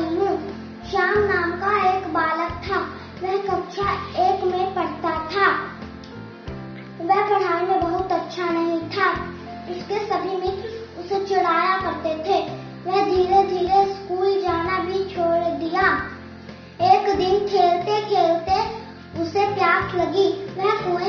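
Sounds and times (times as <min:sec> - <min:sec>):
girl singing: 0:00.0 - 0:05.7, 0:07.0 - 0:16.2, 0:16.8 - 0:21.0
low instrumental accompaniment: 0:00.0 - 0:21.0.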